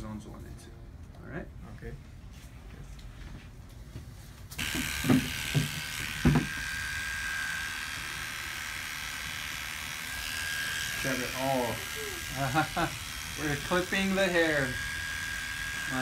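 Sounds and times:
electric hair clippers buzzing: 4.5 - 16.0.

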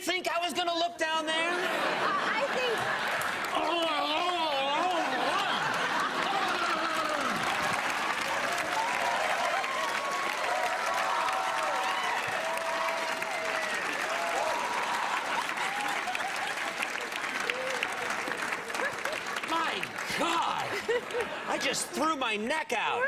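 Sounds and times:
people laughing and whooping: 1.4 - 21.8
audience clapping: 1.6 - 21.9.

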